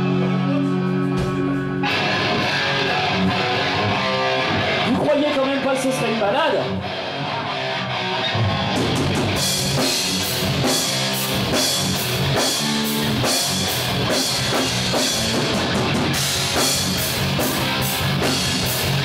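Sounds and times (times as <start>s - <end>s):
heavy metal band playing: 0.0s - 19.0s.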